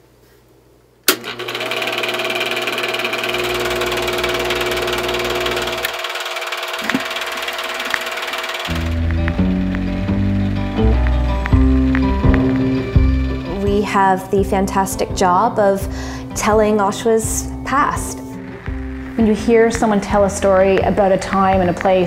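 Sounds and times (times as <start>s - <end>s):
film projector running: 1.1s - 10.7s
music with bass line: 8.7s - 22.0s.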